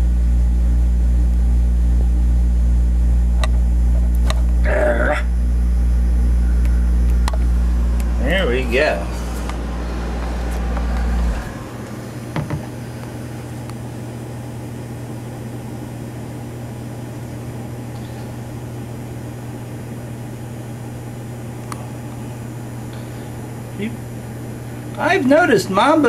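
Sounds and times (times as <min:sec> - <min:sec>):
mechanical hum of room equipment: 0:00.0 - 0:26.0
deep loud drone: 0:04.5 - 0:14.2.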